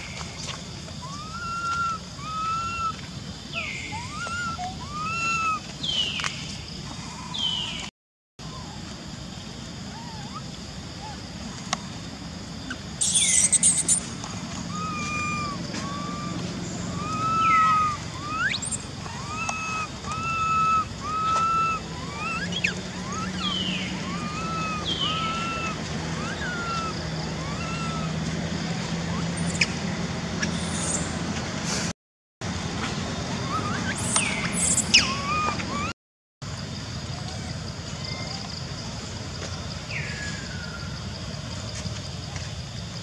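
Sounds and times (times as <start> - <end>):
monkey screaming: 1.0 - 5.7, 13.0 - 14.0, 14.6 - 28.3, 33.4 - 36.0
short chirping calls: 12.6 - 28.2, 29.1 - 29.8, 33.4 - 35.9.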